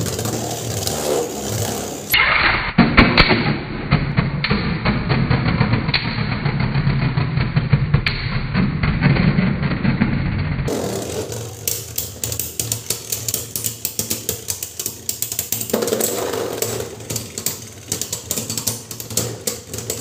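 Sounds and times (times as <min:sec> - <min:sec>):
spinning tops clattering: 0:10.7 - 0:20.0.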